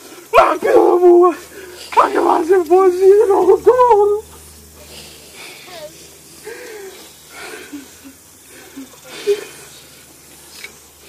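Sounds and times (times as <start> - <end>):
man shouting a held cry: 0.0 - 4.3.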